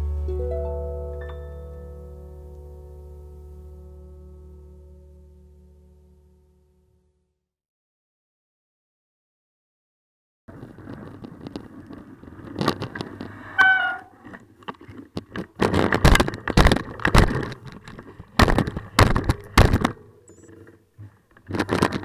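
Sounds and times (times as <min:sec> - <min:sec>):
bicycle knocks and rumbles: 0:10.5 - 0:20.0, 0:21.3 - 0:22.0
short high squeak: 0:13.6 - 0:14.2.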